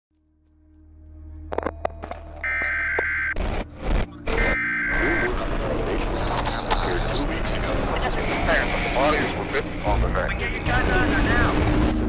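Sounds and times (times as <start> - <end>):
long electronic beeps: 2.4 - 3.4, 4.3 - 5.5
low steady drone: 3.3 - 12.0
burst of static: 3.4 - 12.0.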